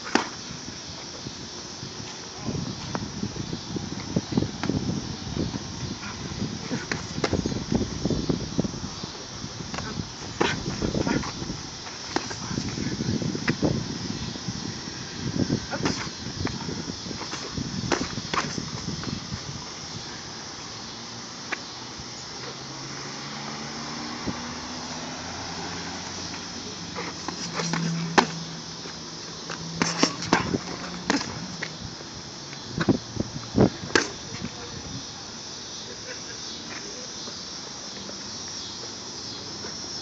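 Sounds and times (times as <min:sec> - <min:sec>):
boxing gloves smacking: 0:17.2 - 0:18.7, 0:29.5 - 0:31.4.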